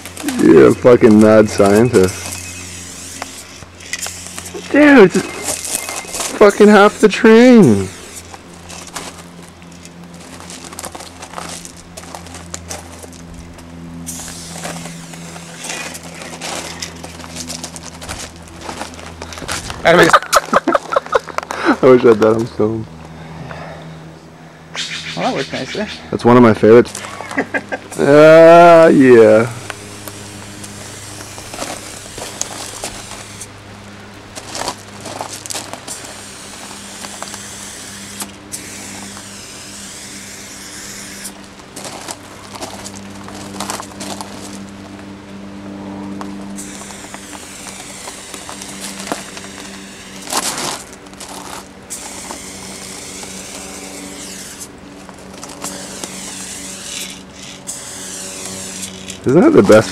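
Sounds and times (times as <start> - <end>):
low hum: 0.0 - 59.9
spray can hissing: 1.6 - 5.4, 14.1 - 16.0, 35.8 - 41.3, 46.6 - 50.2.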